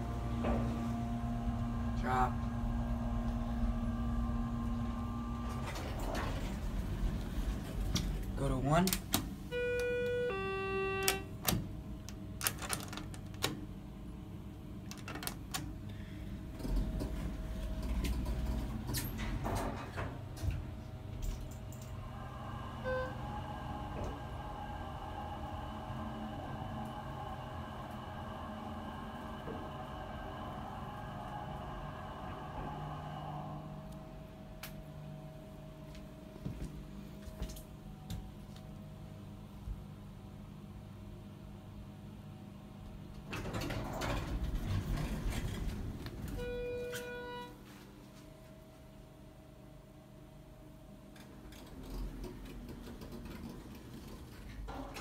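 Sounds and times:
elevator car rumble: 0.0s - 35.8s, 41.0s - 47.7s, 51.0s - 55.0s
elevator car whine: 0.0s - 55.0s
elevator electronic beeps: 9.5s - 11.4s, 22.7s - 23.9s, 46.3s - 47.6s.

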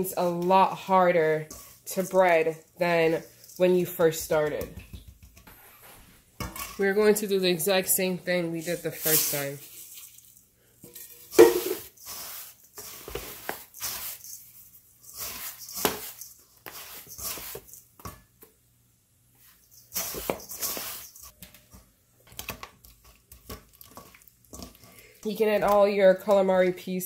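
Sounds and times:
seasoning shaker shaken: 0.2s - 4.5s, 8.6s - 10.5s, 11.2s - 18.0s, 19.4s - 21.4s
breadcrumbs poured into metal bowl: 11.3s - 17.8s.

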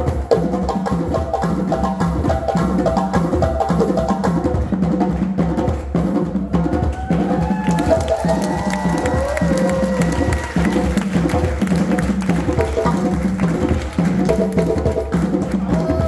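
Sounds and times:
hand drums playing fast rhythm: 0.0s - 16.0s
sharp high drum slaps: 0.0s - 16.0s.

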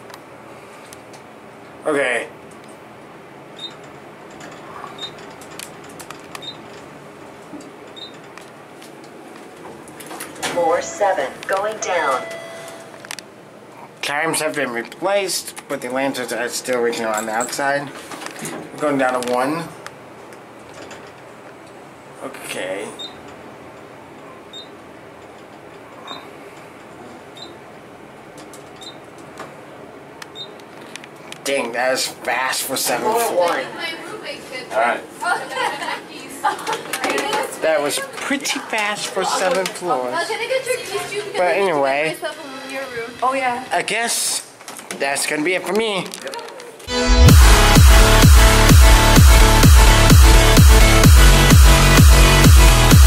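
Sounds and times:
elevator car ride noise: 2.4s - 13.2s
short high beeps: 11.8s - 12.9s.

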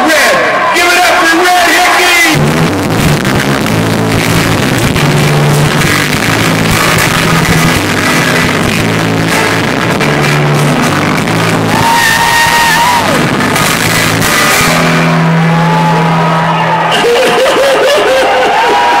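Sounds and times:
loud rock music over speakers: 0.0s - 19.0s.

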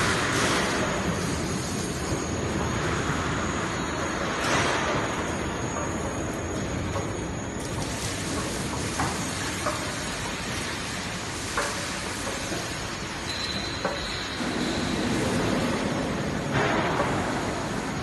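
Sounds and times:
roll forming machine rumbling: 0.0s - 18.0s
sharp clicks and knocks: 11.5s - 12.8s.

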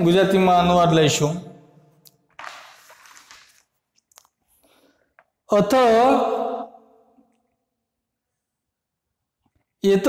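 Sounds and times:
man speaking: 5.5s - 6.7s.

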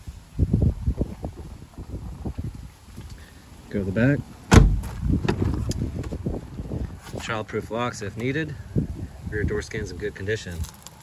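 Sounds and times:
car door thud: 4.5s - 5.7s.

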